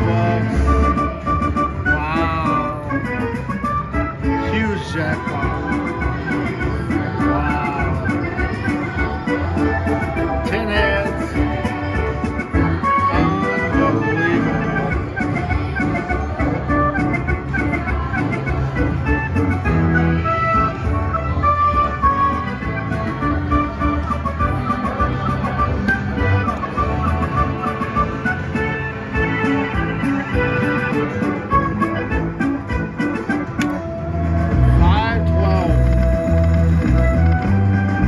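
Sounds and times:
slot machine celebration music: 0:00.0 - 0:38.0.

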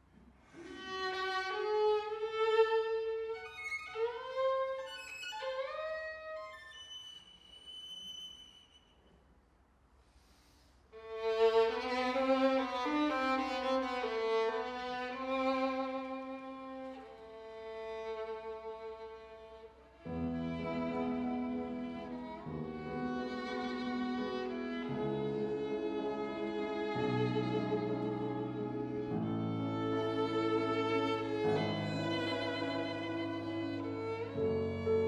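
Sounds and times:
violin playing a slow melody: 0:00.6 - 0:08.5, 0:11.0 - 0:35.0.

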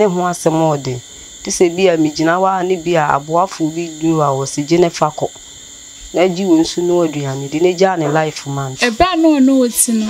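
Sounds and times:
crickets trilling: 0:00.0 - 0:10.0
woman talking: 0:08.8 - 0:10.0.

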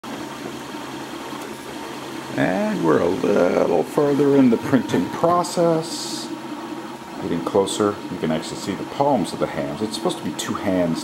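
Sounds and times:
printer fans and motors humming: 0:00.0 - 0:11.0.

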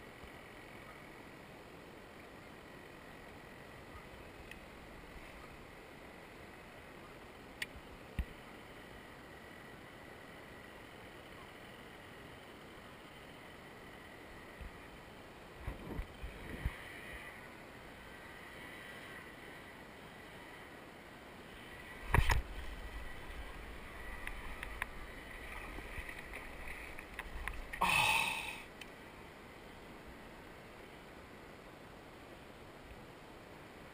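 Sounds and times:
paddle strokes swishing in water: 0:21.9 - 0:27.8.

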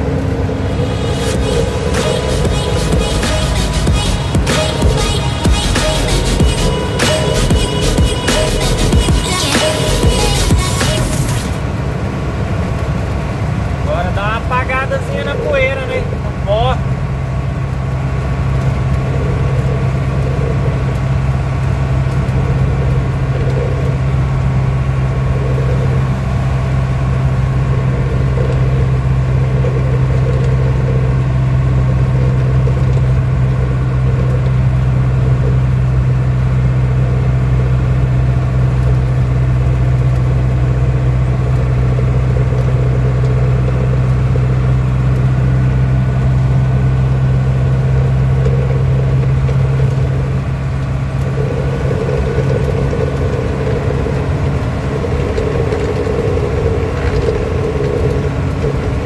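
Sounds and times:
diesel truck engine droning: 0:00.0 - 0:59.0.

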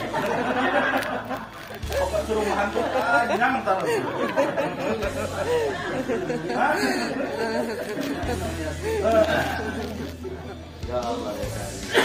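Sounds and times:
chatter of several people: 0:00.0 - 0:12.0.

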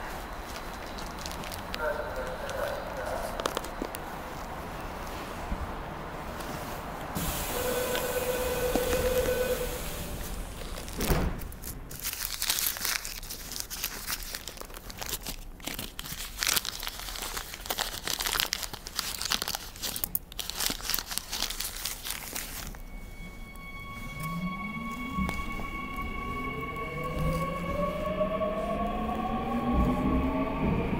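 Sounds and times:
paper envelope crinkling: 0:00.0 - 0:05.5, 0:08.7 - 0:24.1
train motors whining: 0:06.2 - 0:11.1, 0:22.9 - 0:30.9
steady tones: 0:22.6 - 0:30.9.

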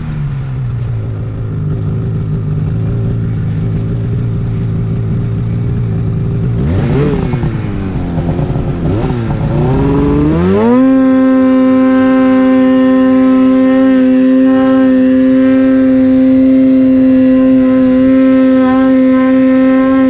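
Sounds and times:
snowmobile engine revving: 0:01.4 - 0:20.0.

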